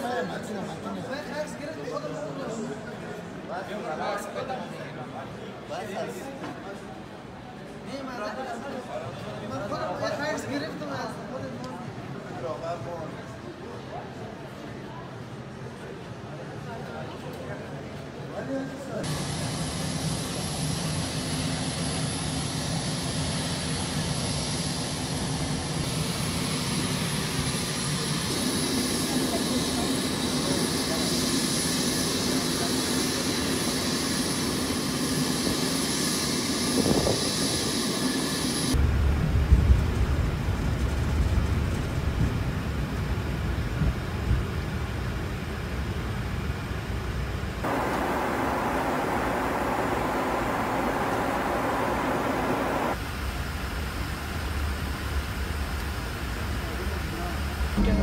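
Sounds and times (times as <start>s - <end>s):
jet airliner whine: 19.0s - 41.0s, 47.6s - 53.7s
jet cabin noise in flight: 45.9s - 53.1s
low jet rumble: 47.7s - 53.0s.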